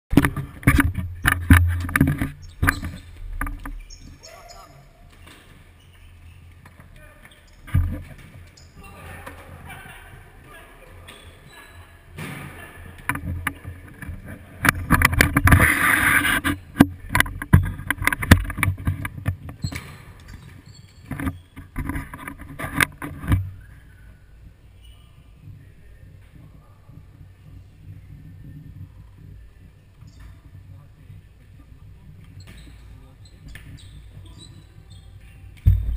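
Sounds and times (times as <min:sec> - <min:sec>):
ball kicked and bouncing on court: 0:00.1 - 0:10.2, 0:16.8 - 0:22.0, 0:35.6 - 0:35.9.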